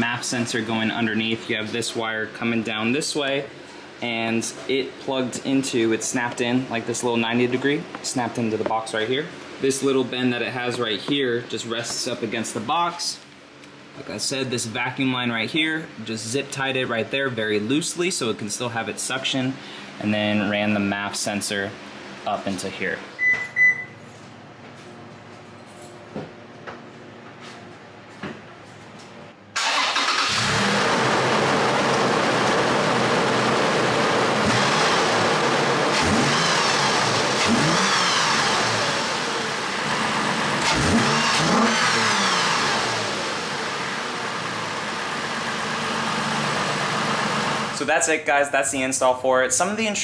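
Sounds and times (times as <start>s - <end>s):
car engine revving: 29.6s - 47.8s
engine intake growl: 29.6s - 47.8s.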